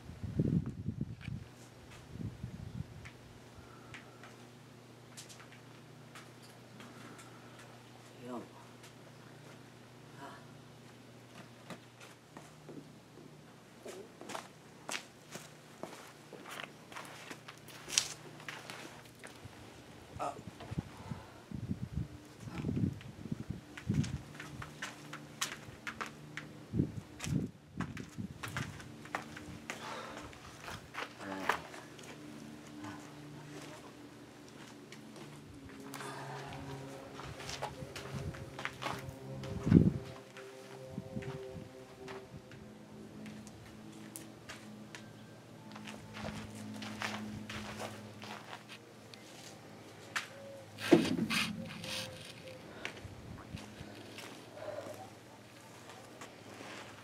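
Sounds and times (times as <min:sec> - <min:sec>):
steady low hum: 0:00.0 - 0:57.0
footsteps: 0:13.8 - 0:19.4, 0:27.2 - 0:57.0.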